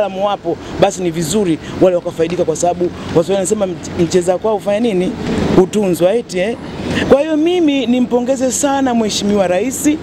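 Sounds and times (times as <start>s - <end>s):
person speaking: 0.0s - 10.0s.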